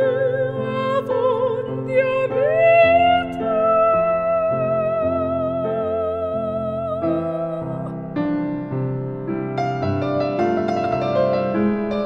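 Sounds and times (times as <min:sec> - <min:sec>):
piano sustained chords: 0:00.0 - 0:12.0.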